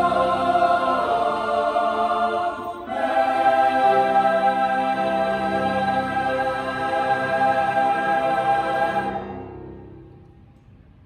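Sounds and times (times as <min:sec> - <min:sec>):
mixed choir singing in harmony: 0:00.0 - 0:10.1.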